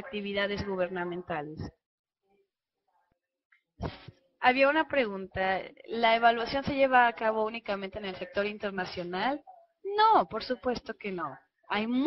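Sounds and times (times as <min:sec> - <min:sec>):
woman speaking: 0:00.0 - 0:01.8, 0:03.8 - 0:12.0.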